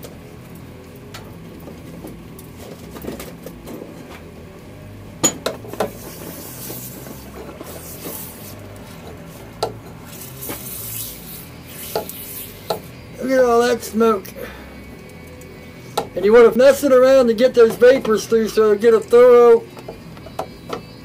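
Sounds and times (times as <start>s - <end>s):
oil sizzling and hissing: 0.0s - 20.7s.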